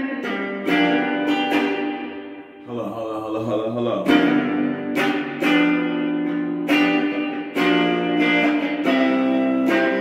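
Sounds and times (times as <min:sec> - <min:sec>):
electric guitar note ringing: 0:00.0 - 0:03.1, 0:04.0 - 0:10.0
man singing low note: 0:02.6 - 0:04.6.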